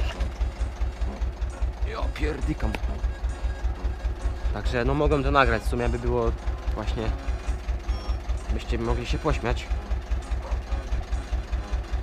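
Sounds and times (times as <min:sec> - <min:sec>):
tractor engine idling: 0:00.0 - 0:12.0.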